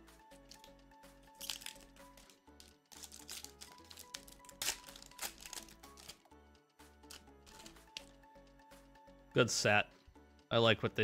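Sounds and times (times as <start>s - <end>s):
quiet background music: 0.0s - 11.0s
foil wrapper crinkling: 1.4s - 6.2s.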